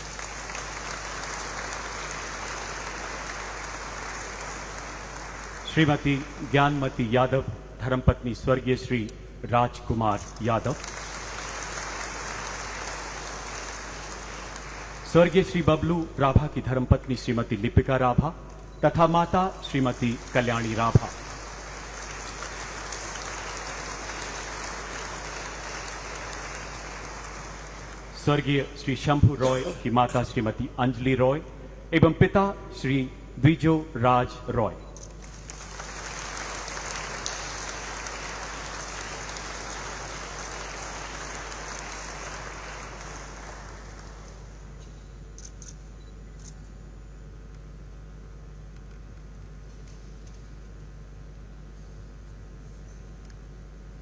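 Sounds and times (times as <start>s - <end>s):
audience applauding: 0.0s - 6.8s, 10.6s - 15.5s, 19.7s - 28.3s, 35.2s - 44.6s.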